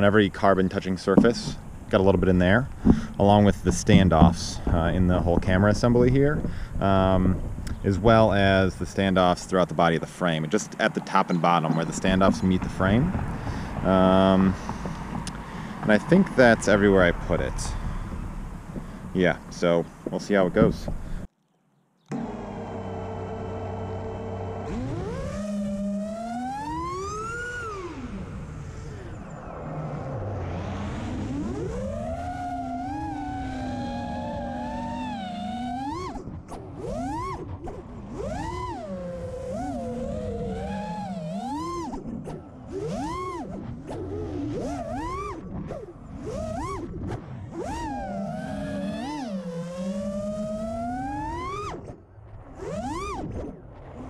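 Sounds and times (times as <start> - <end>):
drone motors whining: 0.0 - 21.3, 22.0 - 54.0.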